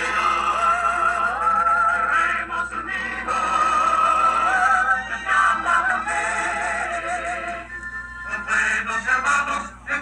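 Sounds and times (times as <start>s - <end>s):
song playing from television: 0.0s - 10.0s.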